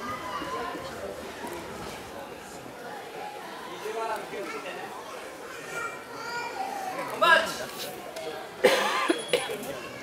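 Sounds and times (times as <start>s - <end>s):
background chatter: 0.0s - 10.0s.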